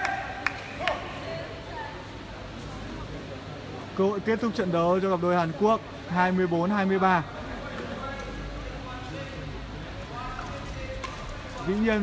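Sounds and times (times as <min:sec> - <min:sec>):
sports hall hum: 0:00.0 - 0:12.0.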